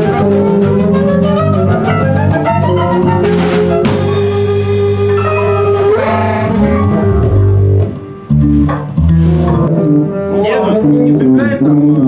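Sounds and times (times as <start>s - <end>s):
double bass and bass guitar: 0.0s - 12.0s.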